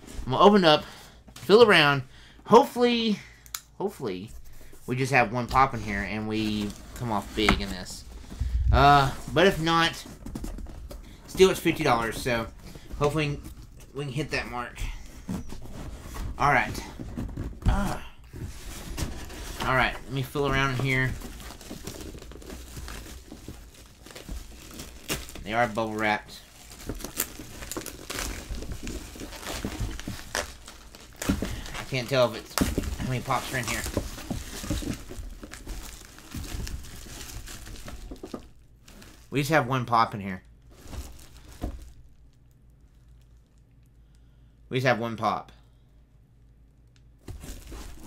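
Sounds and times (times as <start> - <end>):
hands rummaging in cardboard box: 5.5 - 39.3, 40.7 - 42.0, 47.3 - 48.0
bubble wrap crinkling: 5.6 - 39.4, 40.5 - 43.9, 47.2 - 48.0.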